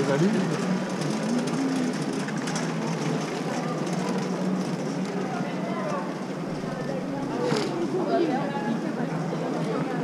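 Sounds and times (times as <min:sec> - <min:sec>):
hum of distant voices: 0:00.0 - 0:10.0.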